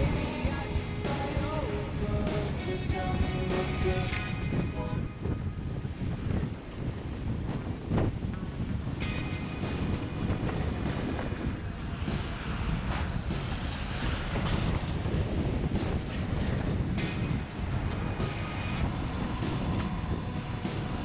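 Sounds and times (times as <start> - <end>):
music playing: 0.0 - 5.2, 9.0 - 21.0
wind buffeting microphone: 0.0 - 21.0.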